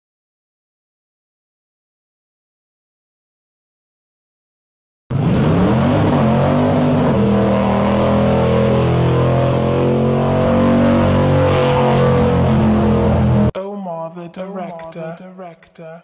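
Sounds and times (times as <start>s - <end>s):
car engine revving: 5.1s - 13.5s.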